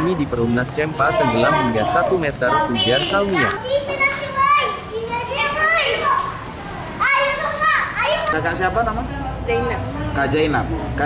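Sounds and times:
children chattering and calling out: 0.0s - 10.2s.

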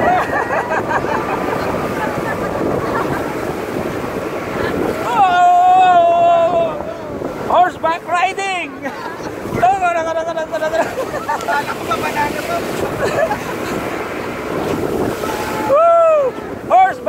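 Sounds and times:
wind and water rushing: 0.0s - 17.0s
person whooping and yelling: 5.0s - 7.1s, 15.2s - 16.4s.

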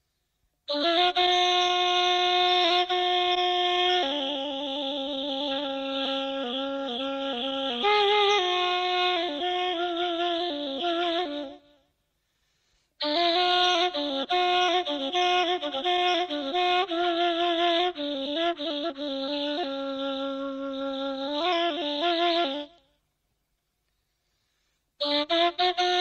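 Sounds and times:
reed flute playing solo: 0.7s - 11.9s, 13.0s - 23.0s, 24.6s - 26.0s.

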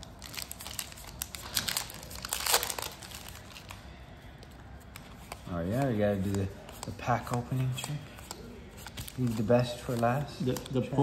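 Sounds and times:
foil wrapper crinkling and tearing: 0.0s - 11.0s.

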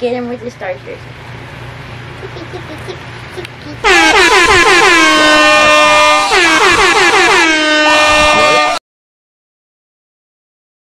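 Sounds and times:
loud air horn: 3.8s - 8.8s.

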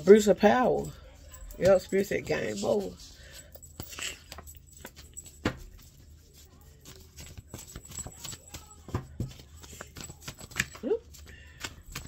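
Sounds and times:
cards and objects clicking on desk: 1.5s - 12.0s.

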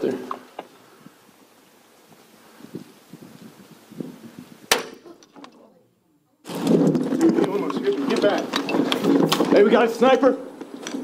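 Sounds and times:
rifle shot crack: 4.7s - 5.0s.

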